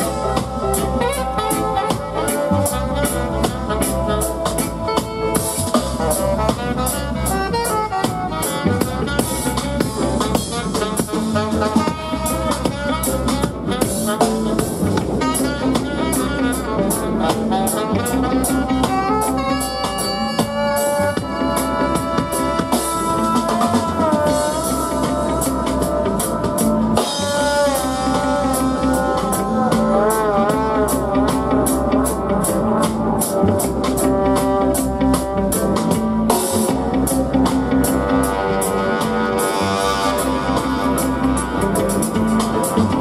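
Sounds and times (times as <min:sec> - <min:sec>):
drum kit beat: 0:00.0 - 0:43.0
electric bass line: 0:00.0 - 0:43.0
saxophone and trombone melody: 0:00.0 - 0:43.0.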